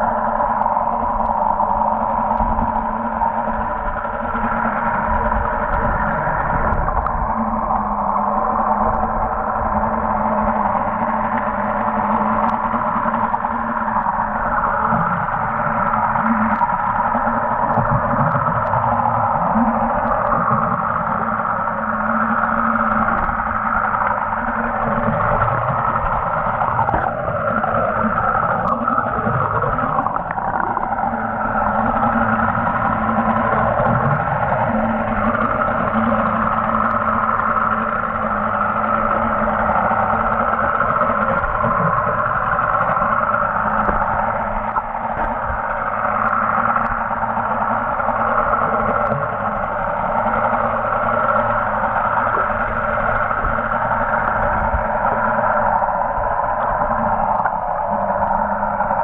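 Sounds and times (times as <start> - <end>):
muffled underwater hum: 0.0 - 59.0.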